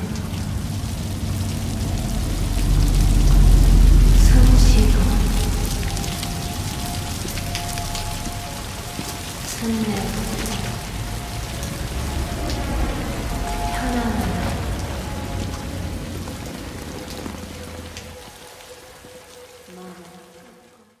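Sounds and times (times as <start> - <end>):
low rumble: 0.0 - 18.4
rain falling on a car: 0.0 - 20.8.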